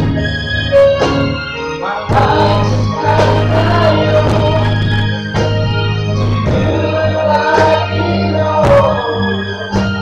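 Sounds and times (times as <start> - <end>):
voices singing together: 1.6 - 5.6, 6.2 - 10.0.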